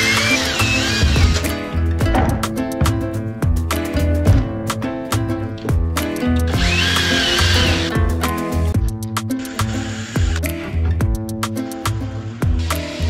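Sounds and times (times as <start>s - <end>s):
cordless drill whine: 0.0s - 1.5s, 6.5s - 7.9s
background music with beat: 0.0s - 13.0s.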